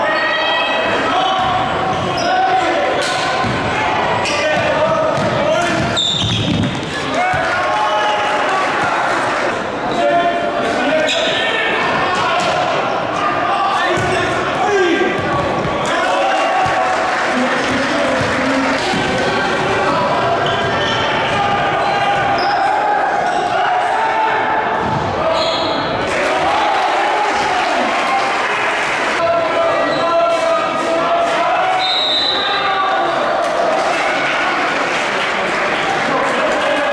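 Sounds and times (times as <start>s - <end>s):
spectators' voices and shouts: 0.0s - 36.9s.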